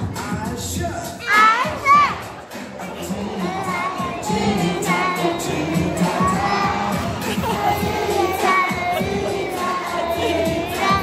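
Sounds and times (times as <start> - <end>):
background music: 0.0 - 11.0
children chattering: 1.1 - 11.0.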